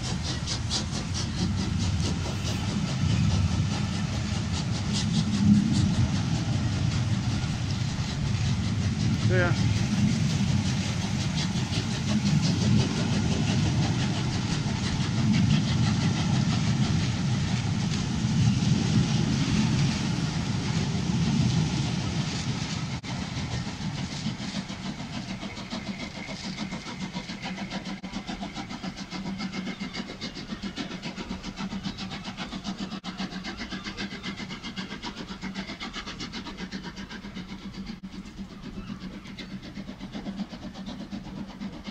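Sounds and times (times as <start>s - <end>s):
train wheels rumbling on rails: 0.0s - 41.9s.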